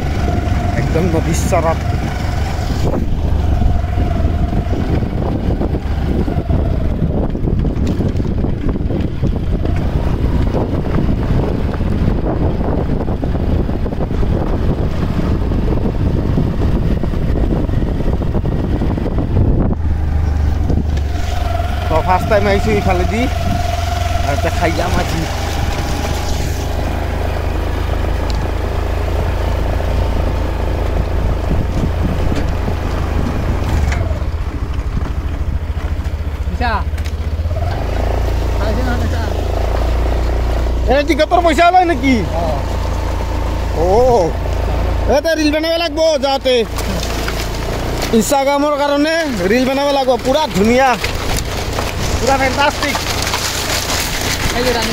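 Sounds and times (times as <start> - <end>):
motorbike engine rumbling: 0.0 - 54.9
scooter on gravel track: 0.0 - 54.9
wind buffeting microphone: 0.0 - 54.9.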